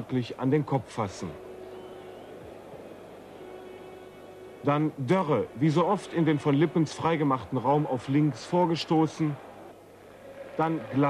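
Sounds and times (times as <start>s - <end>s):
background noise: 0.0s - 11.0s.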